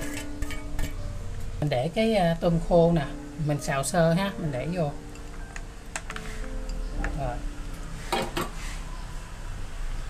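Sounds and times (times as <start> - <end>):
glass bowl clinking: 0.0 - 1.1.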